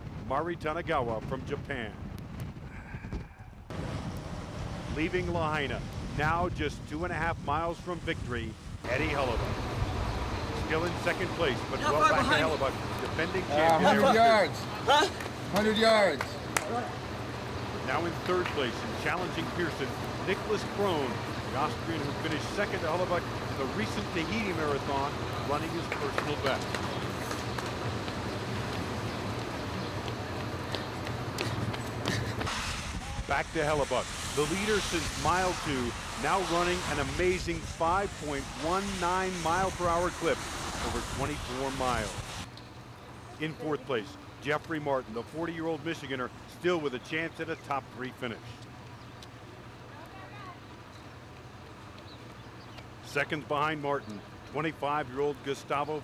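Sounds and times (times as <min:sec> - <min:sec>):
faint street ambience: 0:00.0 - 0:56.0
road noise: 0:00.0 - 0:56.0
steady low hum: 0:00.0 - 0:56.0
vehicle engine rumble: 0:00.0 - 0:56.0
distant voices: 0:03.7 - 0:56.0
bright hiss: 0:32.4 - 0:42.5.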